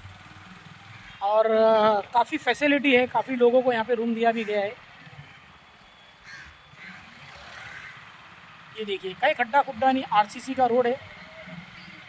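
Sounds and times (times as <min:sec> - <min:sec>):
street background noise: 0:00.0 - 0:12.0
crow cawing: 0:00.9 - 0:01.2, 0:04.3 - 0:04.8, 0:06.2 - 0:08.1.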